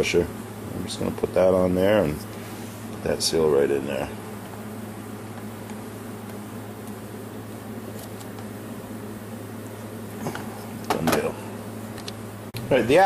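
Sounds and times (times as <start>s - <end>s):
fan-like hiss: 0.0s - 13.0s
low electrical hum: 0.0s - 13.0s.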